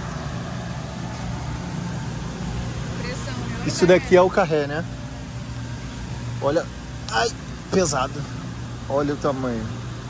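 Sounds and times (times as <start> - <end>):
low drone: 0.0 - 9.8
refrigerated cases humming: 0.0 - 10.0.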